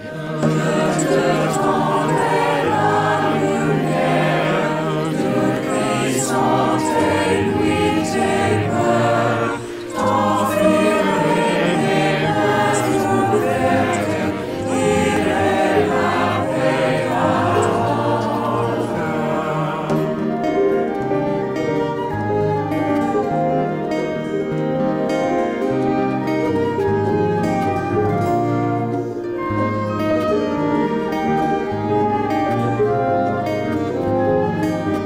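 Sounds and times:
instrumental accompaniment: 0.0s - 35.0s
large choir singing: 0.0s - 35.0s.

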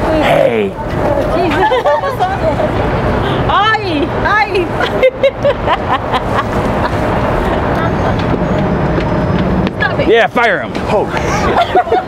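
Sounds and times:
street traffic noise: 0.0s - 12.0s
voices and short laughs: 11.1s - 12.0s.

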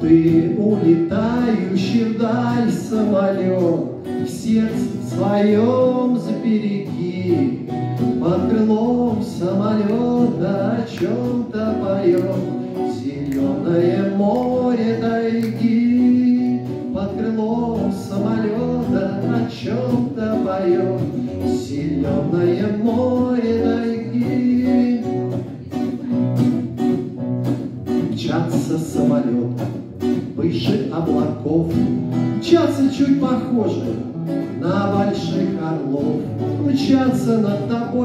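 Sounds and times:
man singing into a microphone: 0.0s - 26.2s, 28.0s - 38.0s
acoustic guitar strumming: 0.0s - 38.0s.

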